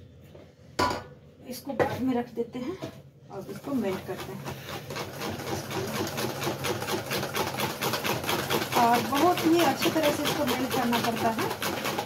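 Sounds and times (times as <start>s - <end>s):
whisk clattering in steel bowl: 3.7s - 12.0s.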